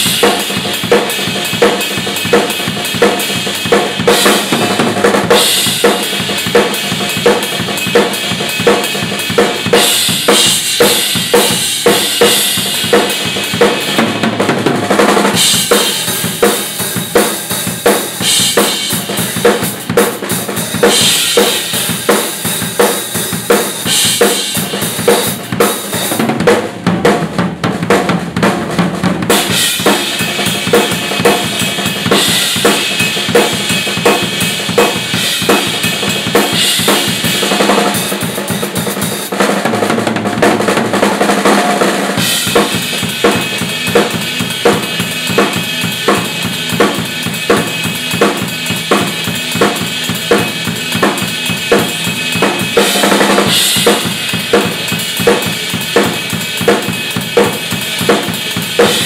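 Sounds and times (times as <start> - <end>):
snare drum: 0.0 - 59.0
cymbals crashing: 15.3 - 26.2, 29.3 - 38.6, 42.2 - 59.0.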